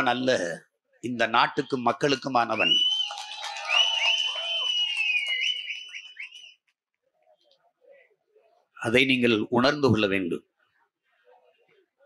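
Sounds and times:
crowd whistling: 0:01.6 - 0:06.7.

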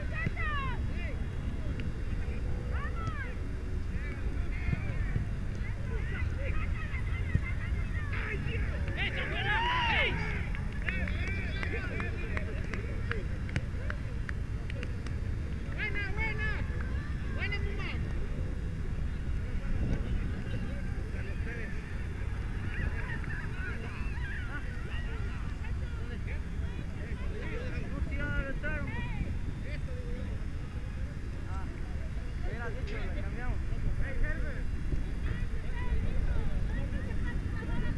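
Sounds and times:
steady low rumble: 0:00.0 - 0:37.9.

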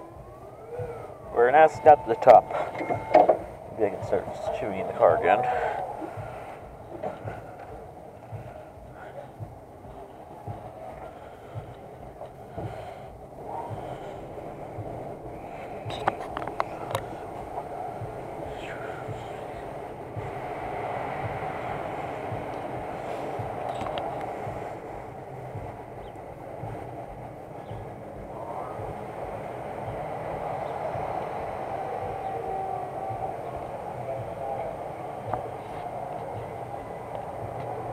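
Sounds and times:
amusement ride rumble and whir: 0:00.0 - 0:37.9.

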